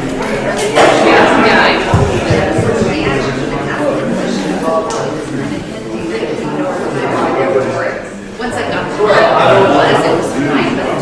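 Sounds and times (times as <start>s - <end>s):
indistinct conversation: 0.0s - 11.0s.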